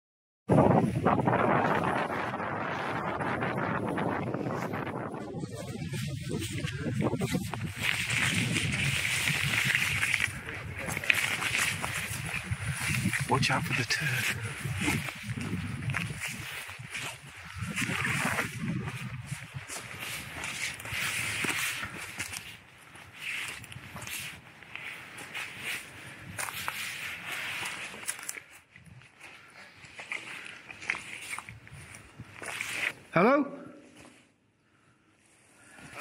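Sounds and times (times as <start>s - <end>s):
footsteps through undergrowth: 5.9s - 33.0s
twigs rustling and cracking: 6.4s - 33.0s.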